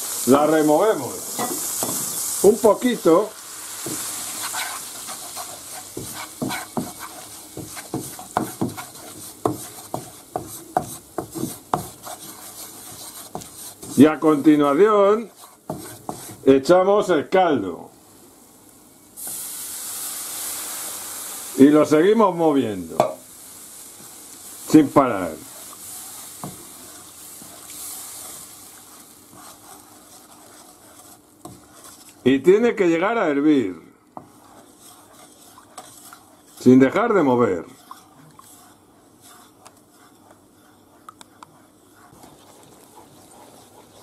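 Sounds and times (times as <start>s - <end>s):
stock sizzling in hot pan: 0.0s - 16.5s, 18.1s - 32.9s, 34.2s - 44.0s.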